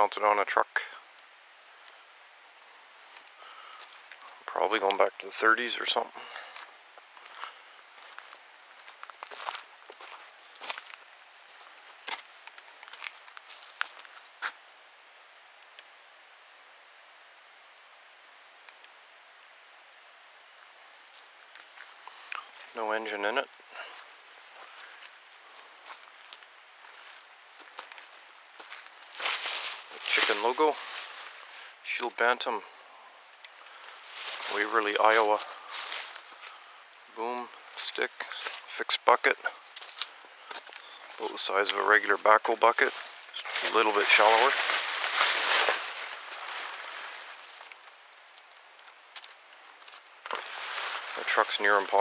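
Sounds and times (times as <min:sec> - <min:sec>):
light footsteps: 0:06.2 - 0:14.6, 0:23.5 - 0:31.7, 0:33.4 - 0:36.7, 0:37.5 - 0:52.0
rustling brush: 0:23.8 - 0:31.8, 0:33.6 - 0:36.7, 0:39.4 - 0:49.2, 0:49.8 - 0:52.0.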